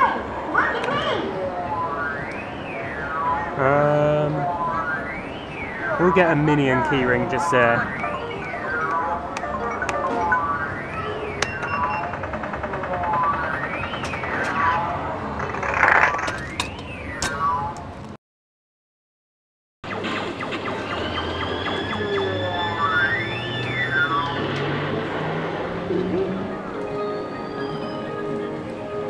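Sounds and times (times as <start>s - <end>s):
electronic sweeping pitch: 1.4s - 15.2s, 19.9s - 28.9s
arcade jingles tones and clicks: 1.6s - 12.3s, 21.2s - 24.7s.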